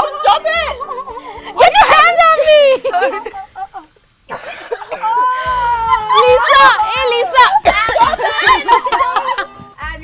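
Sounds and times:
women talking excitedly: 0.0s - 3.6s, 4.8s - 10.0s
women laughing: 0.0s - 9.8s
woman coughing: 4.3s - 5.3s.

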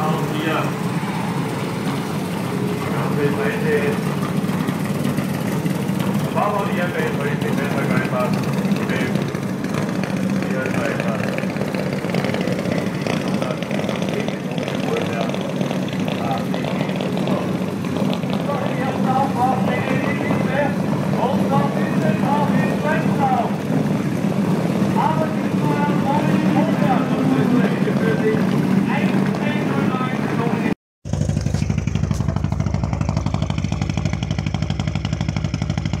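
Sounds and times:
people talking: 0.0s - 0.8s, 2.8s - 4.2s, 6.2s - 9.3s, 10.2s - 11.6s, 12.3s - 17.6s, 18.3s - 23.6s, 24.9s - 30.8s
rally cars idling: 0.0s - 36.0s.

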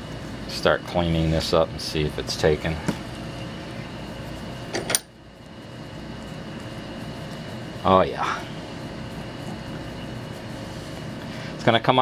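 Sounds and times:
dehumidifier humming: 0.0s - 12.0s.

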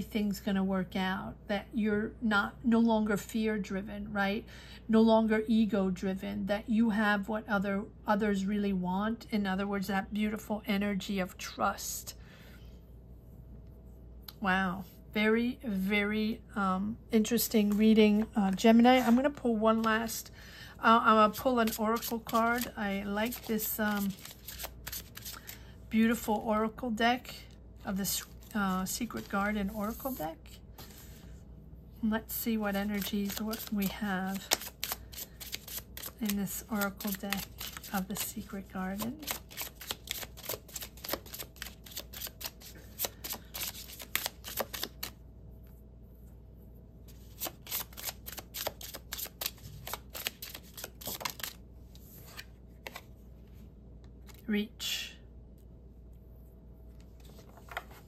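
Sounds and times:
cards rustling: 21.4s - 25.6s, 28.1s - 30.2s, 32.7s - 45.2s, 47.2s - 53.1s, 57.1s - 58.0s.

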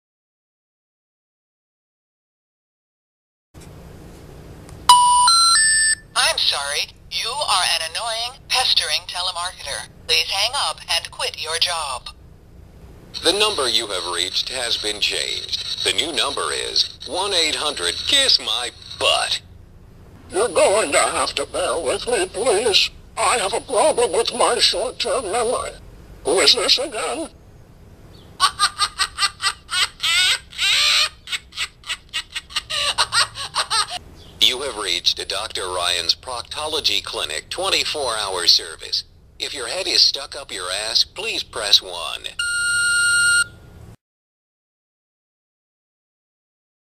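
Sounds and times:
rising telephone intercept tones: 4.9s - 6.1s, 42.4s - 43.6s
recorded laughter from small speaker: 28.4s - 34.0s.

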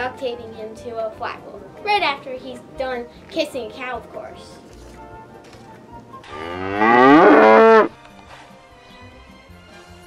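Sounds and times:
cow mooing: 6.2s - 7.9s.

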